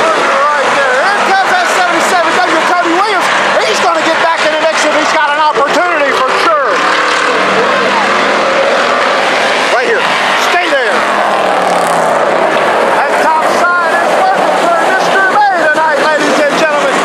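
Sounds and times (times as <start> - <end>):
race car engines passing: 0.0 - 17.0.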